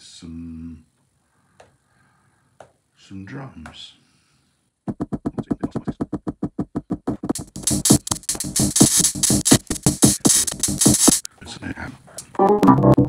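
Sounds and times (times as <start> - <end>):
drum machine beat: 4.9 - 11.3
hissy hi-hats: 7.2 - 11.3.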